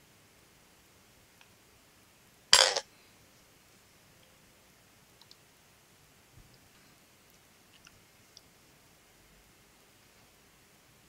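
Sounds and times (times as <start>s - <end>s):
metal spinning top rattling on glass: 2.6s - 2.8s.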